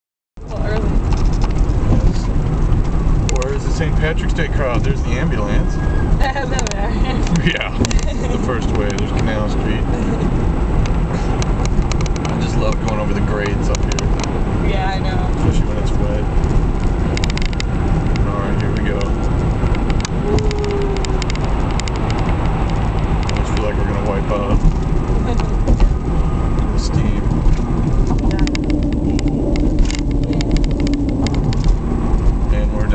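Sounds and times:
car engine and road noise: 0.4 - 32.9.

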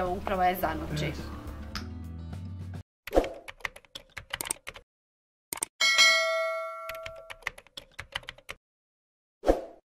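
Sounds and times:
notification bell chime: 5.8 - 7.3.

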